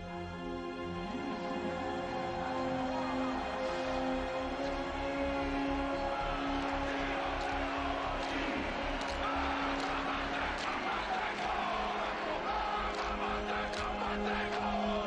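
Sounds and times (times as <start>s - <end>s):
stadium crowd noise: 0.0s - 15.0s.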